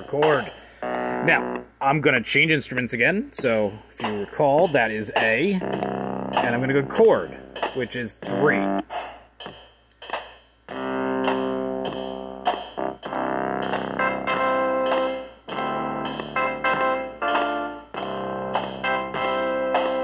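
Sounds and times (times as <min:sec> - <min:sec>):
looped drum and bass pattern: 0:00.0 - 0:01.8, 0:03.3 - 0:20.0
sustained synth chords: 0:00.8 - 0:01.8, 0:03.4 - 0:08.9, 0:10.7 - 0:20.0.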